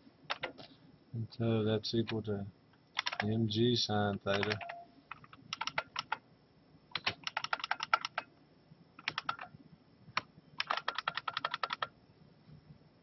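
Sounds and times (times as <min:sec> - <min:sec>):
computer keyboard typing: 0:00.3 - 0:00.6, 0:03.0 - 0:03.4, 0:04.1 - 0:06.2, 0:06.9 - 0:08.3, 0:09.0 - 0:09.5, 0:10.2 - 0:11.9.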